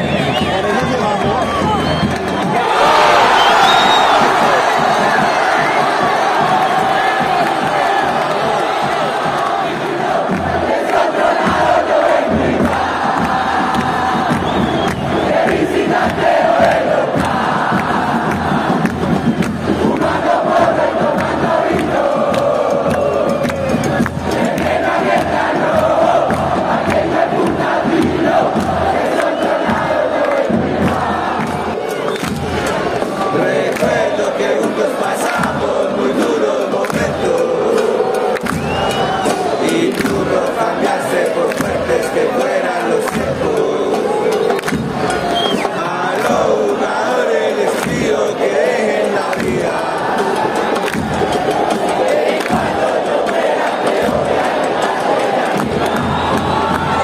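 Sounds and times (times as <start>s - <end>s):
crowd singing a chant: 0.0s - 57.0s.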